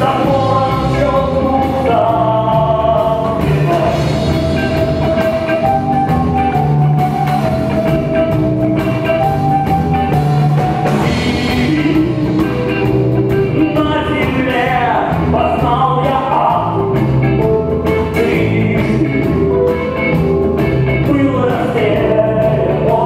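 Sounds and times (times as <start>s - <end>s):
man singing into a microphone: 0.0s - 4.8s, 11.0s - 12.8s, 13.5s - 17.0s, 18.0s - 19.7s, 21.0s - 23.0s
live rock band playing: 0.0s - 23.0s.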